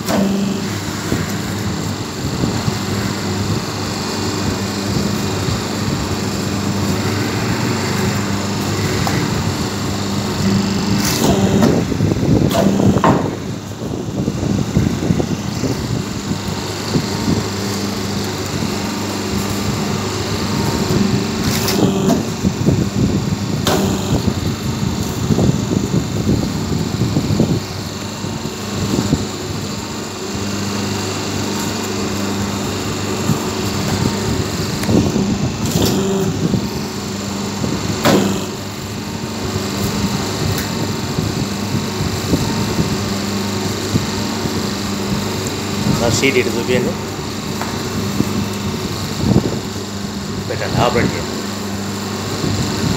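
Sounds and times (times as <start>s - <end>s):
hydraulic pump motor hum: 0.0s - 52.9s
machine press knocks: 12.5s - 13.5s.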